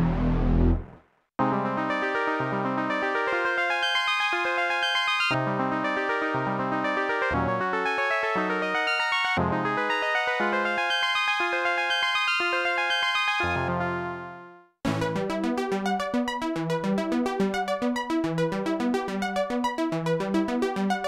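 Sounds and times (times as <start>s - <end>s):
low gritty synth bass: 0.0s - 1.0s
low pulsing bass notes: 0.0s - 1.0s.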